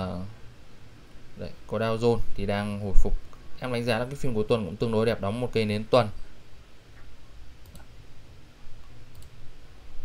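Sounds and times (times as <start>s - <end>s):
faint low hum: 0.0s - 10.0s
computer mouse click: 7.0s - 7.9s, 8.8s - 9.4s.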